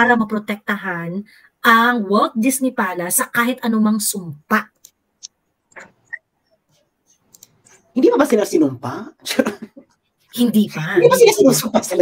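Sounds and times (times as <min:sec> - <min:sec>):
person speaking: 0:07.2 - 0:12.0.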